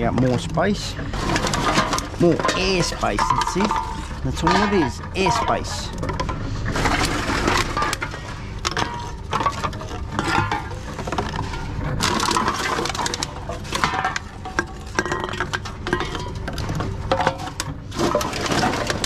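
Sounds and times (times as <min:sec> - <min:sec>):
cans and bottles clinking: 0:00.0 - 0:19.0.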